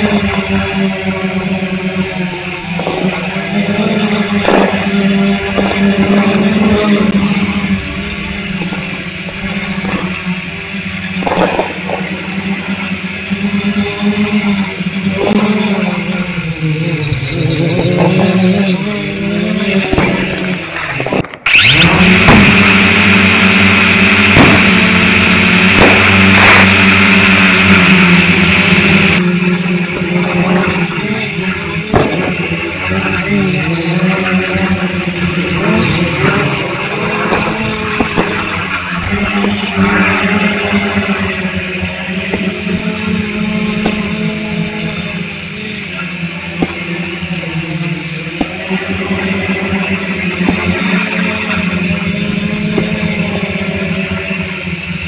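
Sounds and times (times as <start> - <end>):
drone motors whirring: 0.0 - 55.0
fireworks bangs: 2.4 - 16.0, 19.5 - 33.6, 35.1 - 53.8
loud hiss: 21.4 - 29.2.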